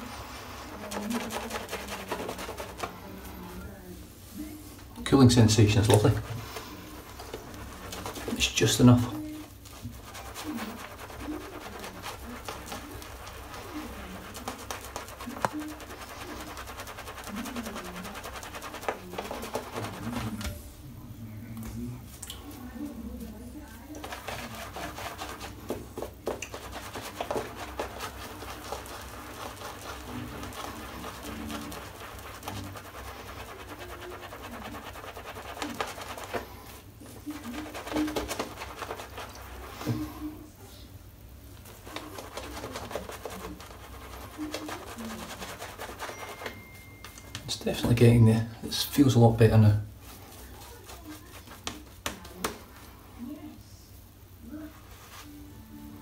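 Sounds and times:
shaving brush squishing lather: 0.0 - 20.8, 21.5 - 40.8, 41.4 - 53.2.

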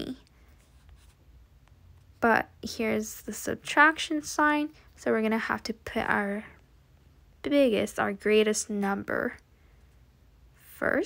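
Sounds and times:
low room hum and hiss: 0.0 - 11.0.

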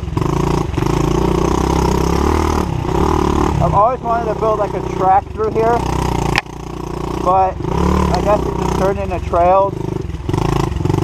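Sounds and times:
small motorbike engine revving: 0.0 - 11.0.

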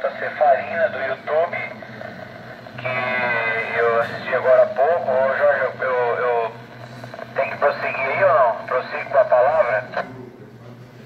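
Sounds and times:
voice over radio speaker: 0.0 - 2.2, 2.8 - 10.1
low hum: 0.0 - 10.2.

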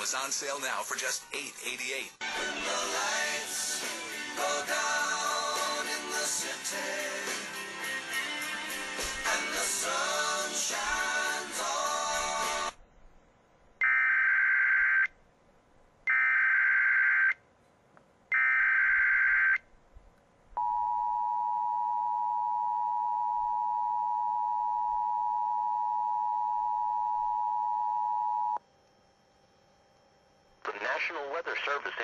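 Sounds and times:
two-tone alarm: 16.1 - 17.4, 18.3 - 19.6.

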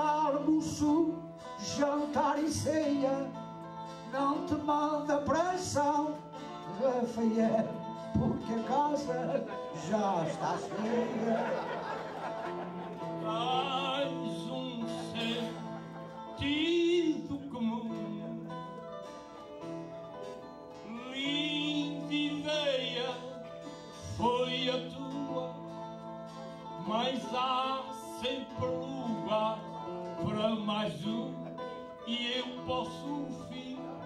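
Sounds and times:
man singing with vibrato: 0.0 - 19.2, 20.7 - 34.0
plucked guitar accompaniment: 0.0 - 34.0.

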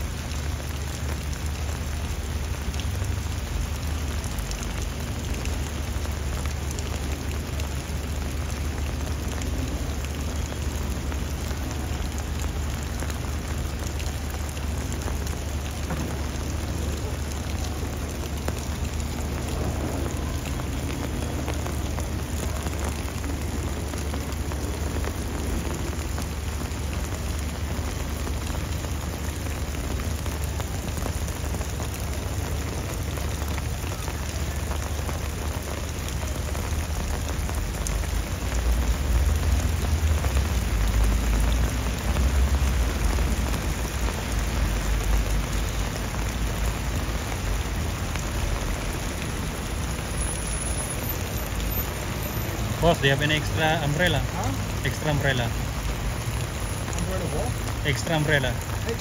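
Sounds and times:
heavy rain on stone paving: 0.0 - 59.0.

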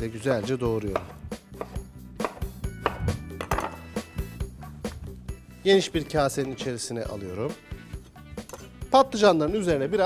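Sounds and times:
background music: 0.0 - 10.0
knife chopping on wooden board: 0.9 - 3.8.

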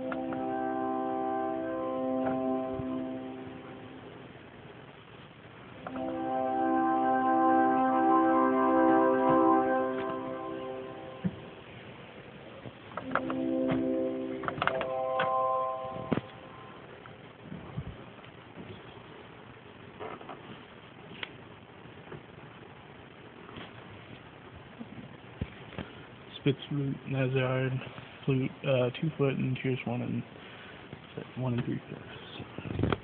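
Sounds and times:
organ keys and stop knobs clicking: 0.0 - 0.8, 2.1 - 3.0, 13.0 - 16.4
pipe organ chord: 0.0 - 4.2, 5.8 - 11.8, 13.0 - 16.9.

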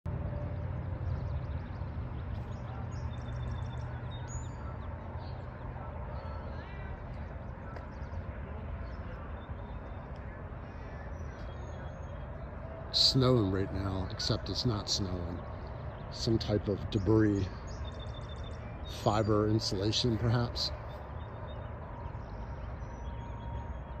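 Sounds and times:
steady low rumble: 0.1 - 24.0
birds chirping and whistling: 0.3 - 24.0.

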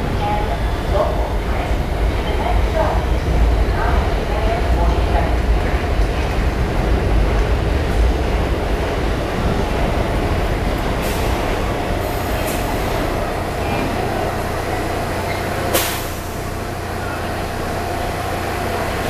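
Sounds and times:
subway train rumble and hum: 0.0 - 19.0.

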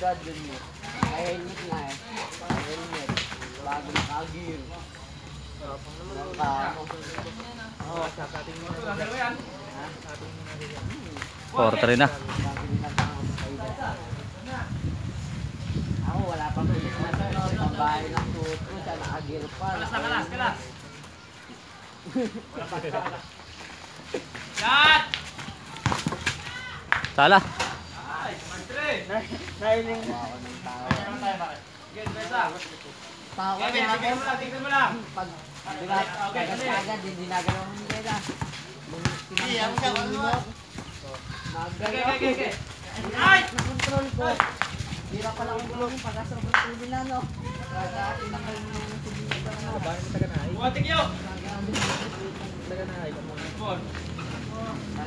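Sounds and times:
people talking and calling out: 0.0 - 55.0
basketball bouncing on concrete: 0.8 - 4.2, 12.2 - 13.3, 25.3 - 27.6, 30.8 - 31.2, 32.0 - 32.4, 37.3 - 40.9, 43.0 - 45.8
people shouting: 24.6 - 26.9.

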